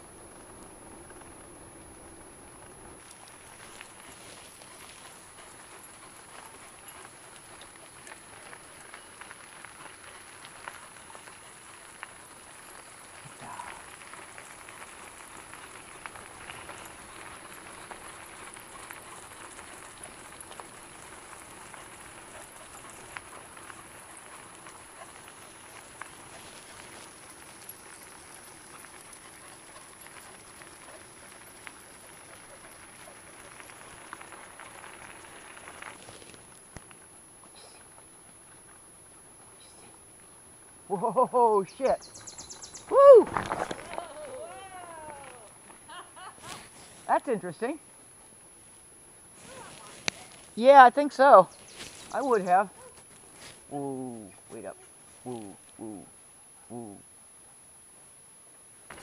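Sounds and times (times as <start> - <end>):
wheels rolling over gravel: 0.0 - 56.0, 58.8 - 59.0.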